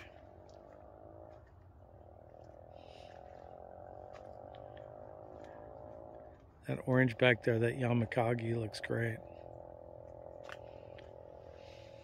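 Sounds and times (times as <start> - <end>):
low buzzing drone: 0.0 - 12.0.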